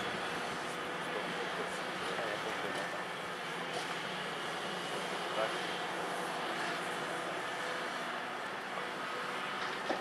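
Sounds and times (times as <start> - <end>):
distant excavator diesel engine: 0.0 - 10.0.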